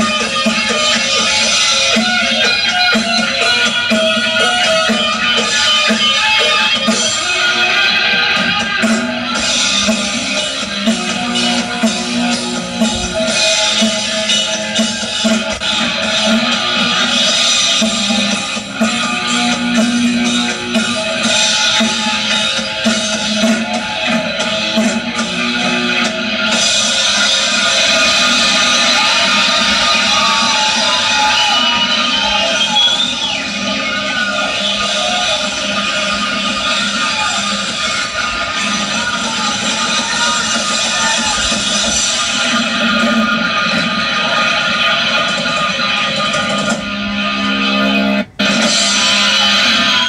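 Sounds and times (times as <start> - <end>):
live rock band playing: 0.0 - 50.0.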